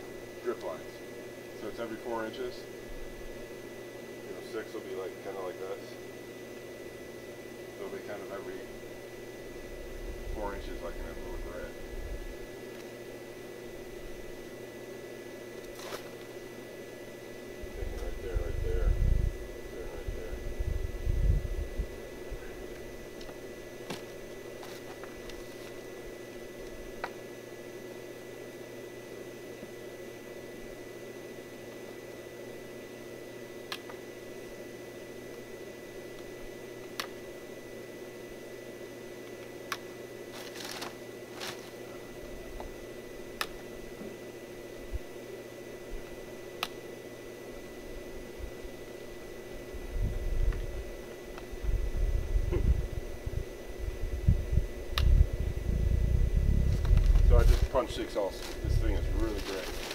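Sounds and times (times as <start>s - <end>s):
steady background hum: 0.0s - 59.9s.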